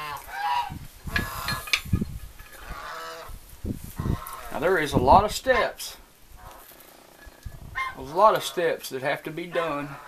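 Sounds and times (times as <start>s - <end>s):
farm animals calling: 0.0s - 1.9s, 2.5s - 10.0s.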